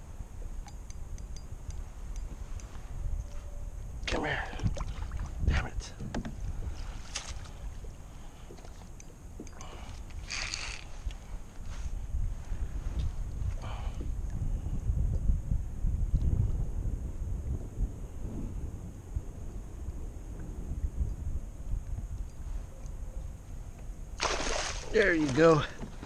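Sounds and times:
wind rumbling on microphone: 0:00.0 - 0:26.0
loud water splash: 0:24.2 - 0:25.0.

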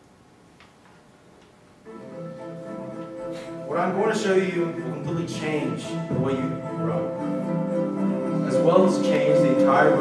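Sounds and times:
music with held notes: 0:01.8 - 0:10.0.

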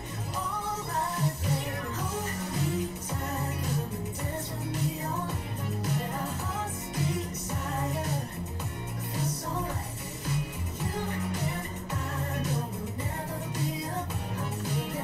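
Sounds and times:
bass line: 0:00.0 - 0:15.0
percussion: 0:00.0 - 0:15.0
pop song with vocals: 0:00.0 - 0:15.0.

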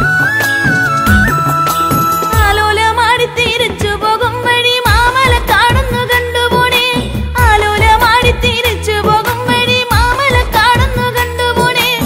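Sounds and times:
bass: 0:00.0 - 0:12.0
steady drum beat: 0:00.0 - 0:12.0.

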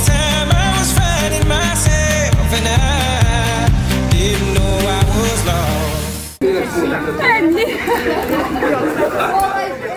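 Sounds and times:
people chattering: 0:06.4 - 0:09.9.

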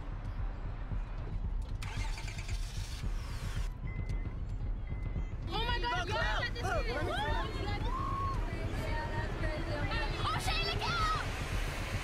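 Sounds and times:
low engine rumble: 0:00.0 - 0:12.0
car engine starter cranking: 0:01.6 - 0:03.7.

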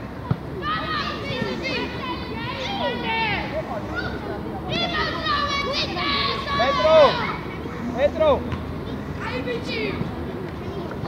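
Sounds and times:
children shouting: 0:00.6 - 0:08.0.

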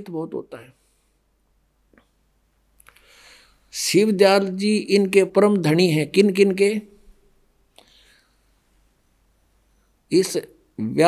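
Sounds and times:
short breath: 0:02.8 - 0:03.7, 0:07.8 - 0:08.6.

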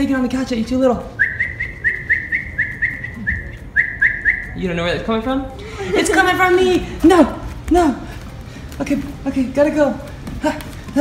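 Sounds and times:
person whistling high chirps: 0:01.2 - 0:04.6.

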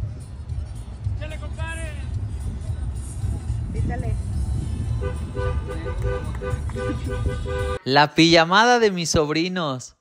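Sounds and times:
car horn short toots: 0:05.0 - 0:07.8.

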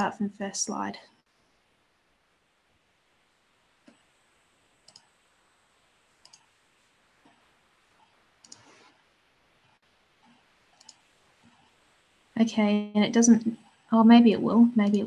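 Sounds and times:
faint mouse clicks: 0:03.8 - 0:04.1, 0:04.8 - 0:05.1, 0:06.2 - 0:06.5, 0:07.2 - 0:09.0, 0:10.2 - 0:11.7.

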